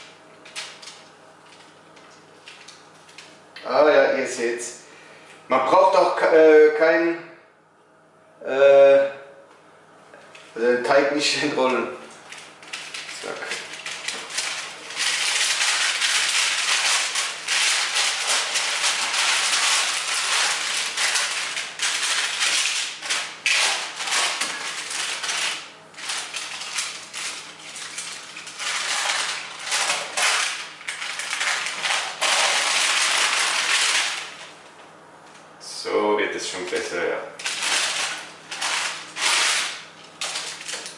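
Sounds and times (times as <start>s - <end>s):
baking paper crackling: 11.2s - 34.6s, 36.4s - 40.9s.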